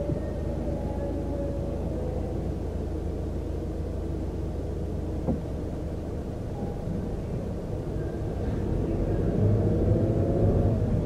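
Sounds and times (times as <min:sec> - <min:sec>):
car engine idling: 0:00.0 - 0:09.9.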